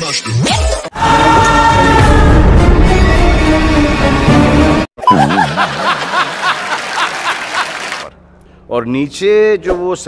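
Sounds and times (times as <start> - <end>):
person laughing rhythmically: 5.0 - 8.1.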